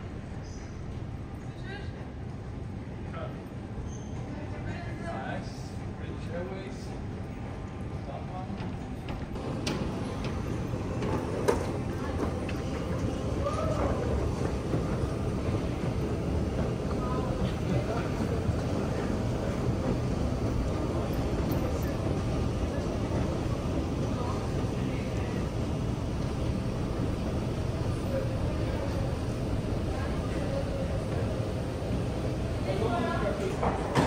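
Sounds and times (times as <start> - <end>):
faint voices: 0.0 - 34.0.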